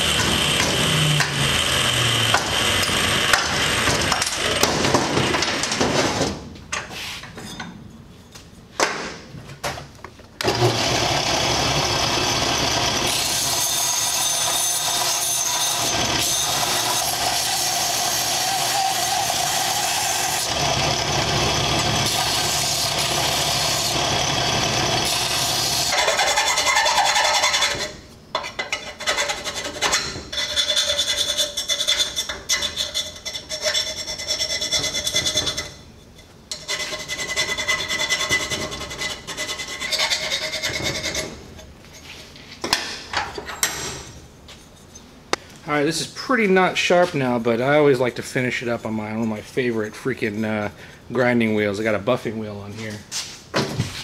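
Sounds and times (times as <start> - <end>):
power grinder grinding steel: 0.0 - 4.6, 10.4 - 27.9
hand file scraping metal: 13.1 - 42.2.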